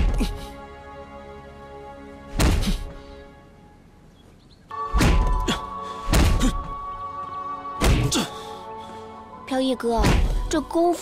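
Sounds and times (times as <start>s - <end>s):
film score music: 0.0s - 11.0s
heavy thuds: 2.3s - 2.9s, 4.9s - 6.8s, 10.0s - 10.5s.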